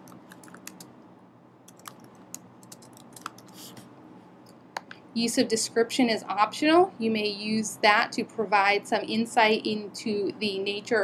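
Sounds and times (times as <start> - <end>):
typing on a keyboard: 0.0 - 0.9, 1.7 - 3.6.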